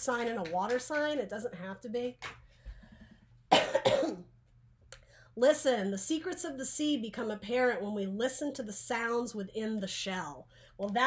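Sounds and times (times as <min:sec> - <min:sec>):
woman coughing: 0:03.5 - 0:04.3.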